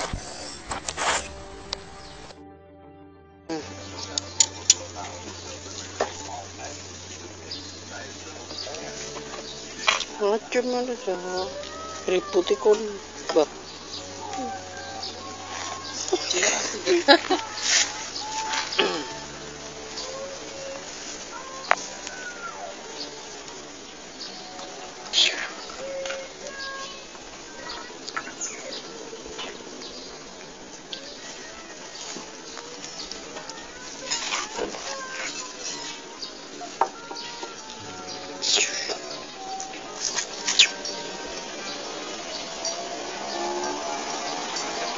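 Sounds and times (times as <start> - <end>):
faint thin whine: 0.0 - 2.4
recording hiss and crackle: 0.0 - 2.4, 3.5 - 44.9
faint high tones: 0.0 - 29.8.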